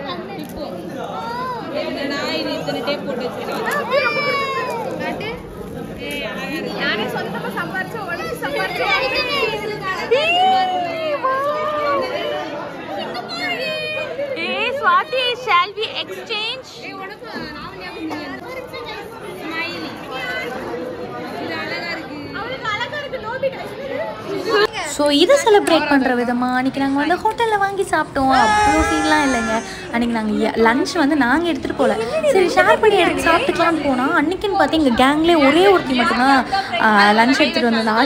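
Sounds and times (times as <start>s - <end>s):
people talking at once: 0.0s - 38.0s
women chatting: 13.1s - 20.5s, 21.6s - 38.0s.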